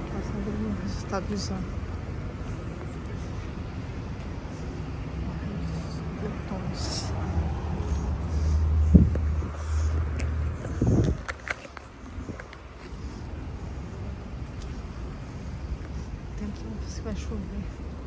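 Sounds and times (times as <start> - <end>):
vehicle passing: 0.0 - 14.3.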